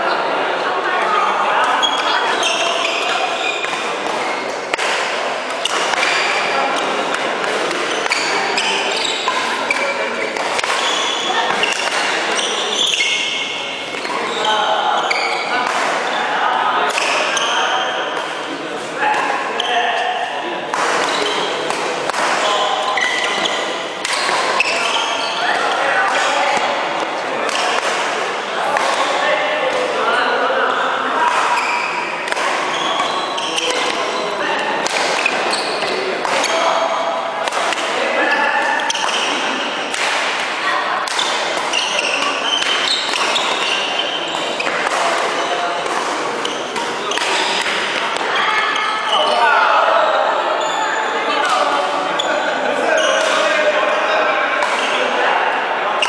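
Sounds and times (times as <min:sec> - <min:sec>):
indistinct voices: 0:00.0 - 0:56.0
rackets striking shuttlecock: 0:03.6 - 0:14.2, 0:15.5 - 0:16.1, 0:20.7 - 0:29.9, 0:31.3 - 0:36.6, 0:37.4 - 0:38.0, 0:38.6 - 0:48.3.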